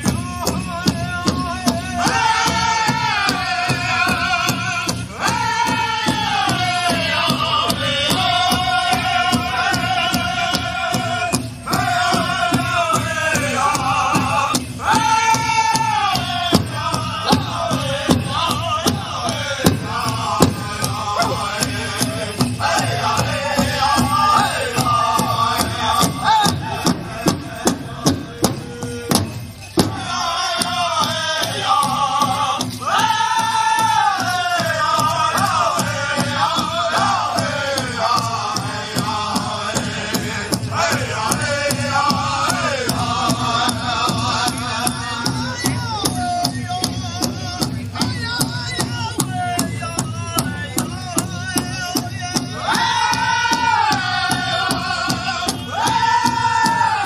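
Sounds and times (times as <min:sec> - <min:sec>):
drum beating steadily: 0:00.0 - 0:57.0
group of singers chanting: 0:01.9 - 0:29.2, 0:29.8 - 0:46.2, 0:52.3 - 0:57.0.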